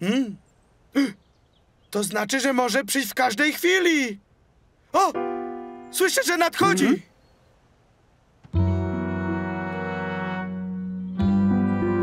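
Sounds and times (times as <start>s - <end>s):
sustained brass chord: 5.2s - 5.9s, 8.6s - 12.0s.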